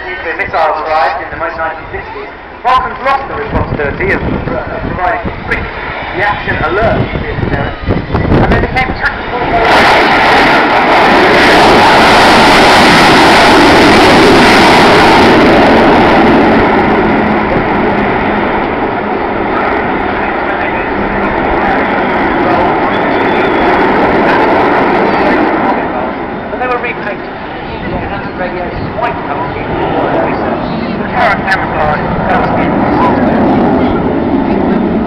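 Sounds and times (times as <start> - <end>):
jet engine roar: 0.0 - 35.0.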